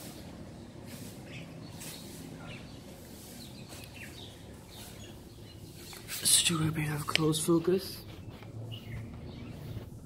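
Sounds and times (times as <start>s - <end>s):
high bird chirps: 1.2s - 6.1s.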